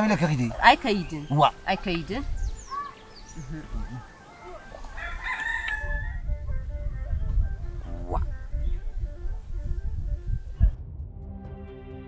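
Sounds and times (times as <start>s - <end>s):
rooster crowing: 3.6s - 6.5s
low rumble: 6.2s - 12.0s.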